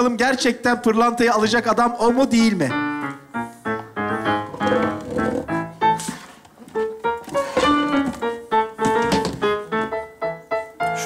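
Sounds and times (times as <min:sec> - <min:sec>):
piano playing a light tune: 0:01.7 - 0:11.0.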